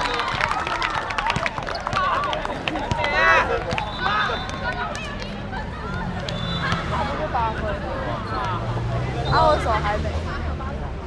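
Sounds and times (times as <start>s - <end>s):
players calling out and chattering: 0.0s - 11.0s.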